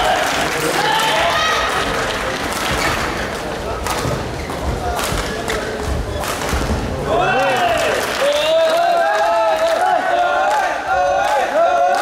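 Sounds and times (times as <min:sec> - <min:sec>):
rackets hitting shuttlecock: 0:04.9 - 0:06.9.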